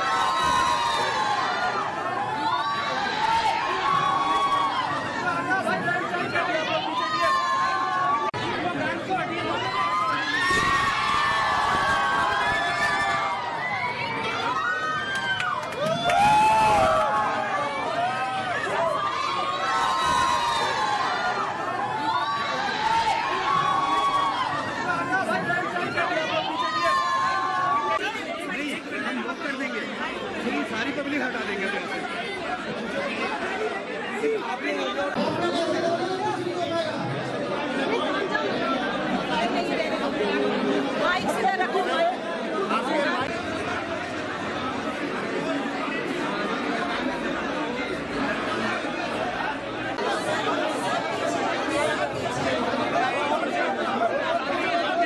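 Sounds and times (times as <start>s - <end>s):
crowd talking and calling out: 0.0s - 55.0s.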